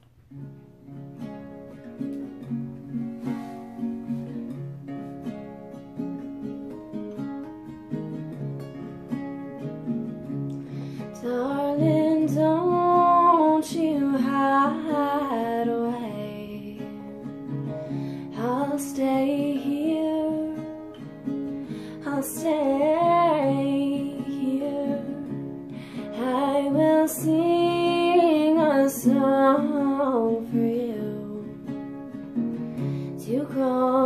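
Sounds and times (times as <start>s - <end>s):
acoustic guitar picking: 0.1s - 34.0s
woman singing: 11.0s - 21.1s, 21.7s - 32.0s, 33.0s - 34.0s.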